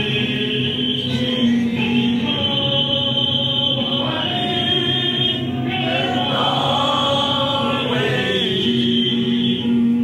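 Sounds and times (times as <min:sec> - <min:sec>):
group singing in unison: 0:00.0 - 0:10.0.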